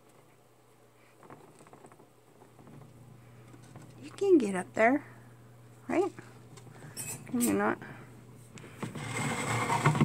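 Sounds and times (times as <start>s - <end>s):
scrabbling and rattling in cage: 1.1s - 3.0s.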